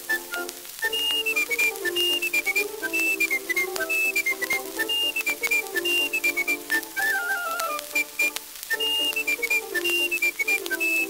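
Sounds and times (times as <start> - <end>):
high whistle-like melody: 0.0 - 11.0
phonograph surface noise clicks: 0.0 - 11.0.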